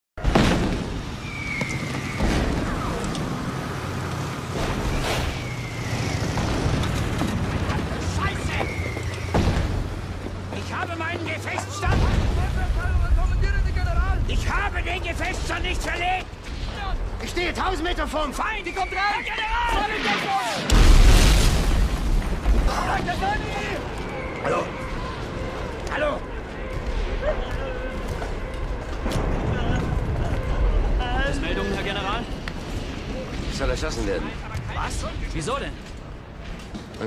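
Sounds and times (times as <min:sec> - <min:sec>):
explosion: 0:00.2 - 0:03.1, 0:04.5 - 0:08.0, 0:11.8 - 0:17.4, 0:19.7 - 0:23.8, 0:26.8 - 0:35.4
artillery shell whistling: 0:01.1 - 0:03.1, 0:04.6 - 0:07.0, 0:08.3 - 0:09.8
falling shell whistle: 0:01.2 - 0:02.7, 0:04.9 - 0:06.2.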